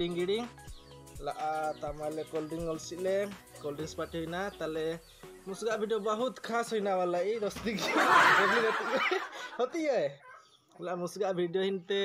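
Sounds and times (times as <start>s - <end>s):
breathy snickering laughter: 7.8s - 9.6s.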